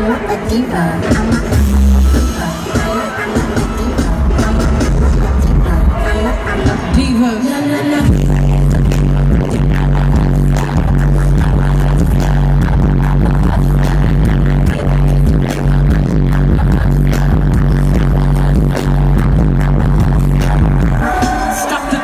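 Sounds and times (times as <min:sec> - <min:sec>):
loud live concert music: 0:00.0 - 0:22.0.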